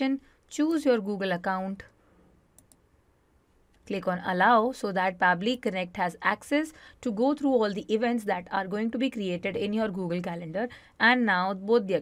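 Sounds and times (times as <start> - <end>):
computer mouse clicks: 2.5 - 2.9.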